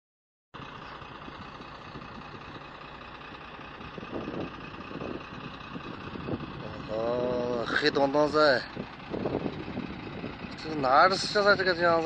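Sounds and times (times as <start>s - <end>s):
vehicle engine idling: 0.6s - 12.0s.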